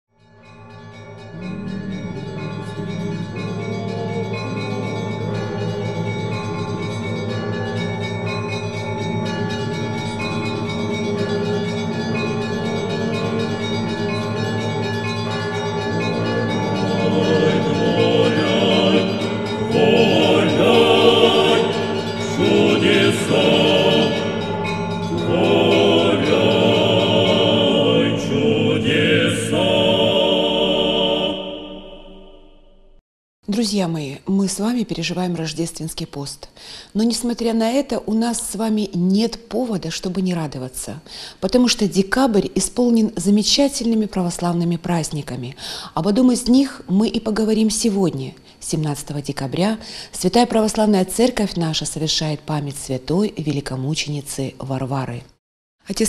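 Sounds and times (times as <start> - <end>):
church choir singing: 16.0 - 32.7.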